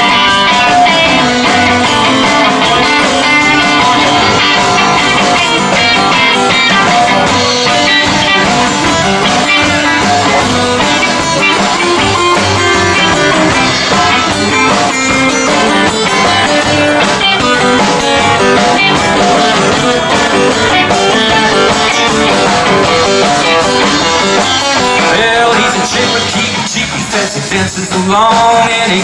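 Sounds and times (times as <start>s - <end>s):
steel guitar: 0.0s - 27.1s
acoustic rhythm guitar: 0.0s - 29.0s
electric guitar: 0.0s - 29.0s
upright bass: 0.0s - 29.0s.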